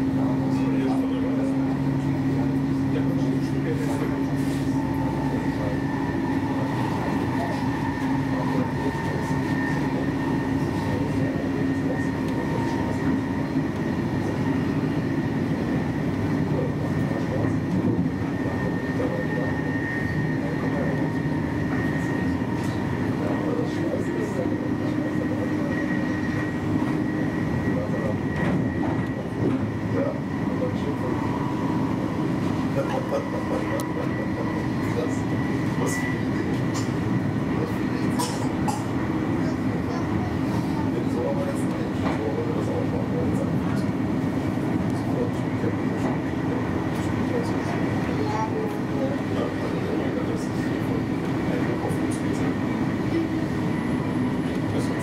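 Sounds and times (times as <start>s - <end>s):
steady multi-tone hum: 0.0s - 55.0s
train wheels rumbling on rails: 0.0s - 55.0s.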